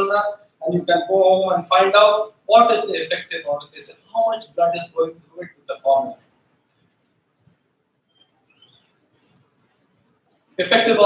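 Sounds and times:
faint high-pitched squeaks: 8.0s - 9.4s.

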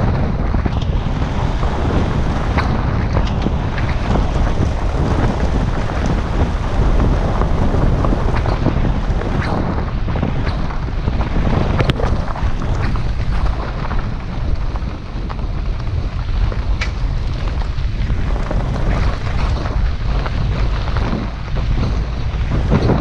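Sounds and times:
tyres rumbling on gravel: 0.0s - 23.0s
wind buffeting microphone: 0.0s - 23.0s.

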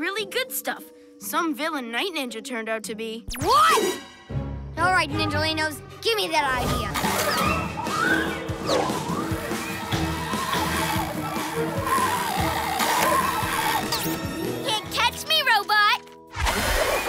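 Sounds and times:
cartoon background music: 0.0s - 17.0s.

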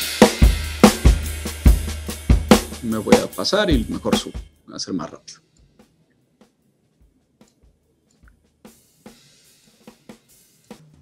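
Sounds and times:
drum kit playing: 0.0s - 11.0s.

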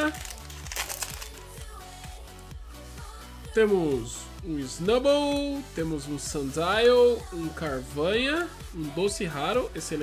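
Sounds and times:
foil wrapper tearing and crinkling: 0.0s - 1.7s
background music with steady beat: 0.0s - 10.0s.

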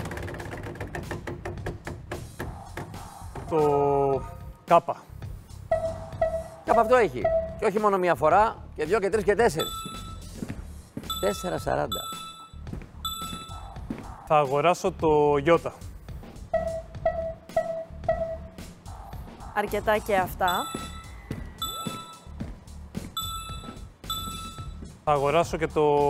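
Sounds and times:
bright electronic dings: 5.7s - 7.6s, 9.6s - 10.3s, 11.1s - 13.7s, 16.5s - 18.6s, 20.5s - 22.3s, 23.2s - 24.8s.

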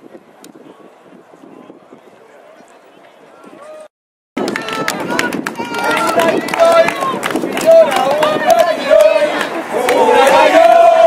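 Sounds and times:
crowd shouting and chanting: 3.5s - 11.0s
scattered handclaps: 4.4s - 10.8s.

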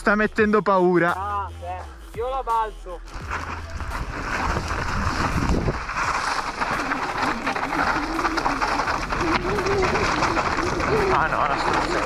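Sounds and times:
bike rattling: 3.1s - 12.0s
tyres crunching over stones: 3.1s - 12.0s
wind noise on microphone: 3.1s - 12.0s.

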